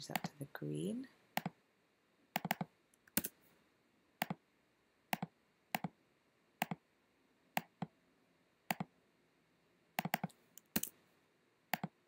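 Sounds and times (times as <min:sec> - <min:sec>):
computer mouse clicking: 0:01.4 - 0:01.6, 0:02.3 - 0:03.3, 0:04.2 - 0:04.4, 0:05.1 - 0:06.0, 0:06.6 - 0:06.8, 0:07.6 - 0:07.9, 0:08.7 - 0:08.9, 0:10.0 - 0:11.0, 0:11.7 - 0:12.0.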